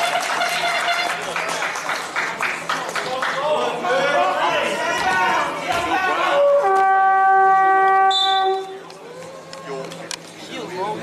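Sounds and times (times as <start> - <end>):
scoreboard horn blast: 0.0 - 1.3, 6.3 - 8.8.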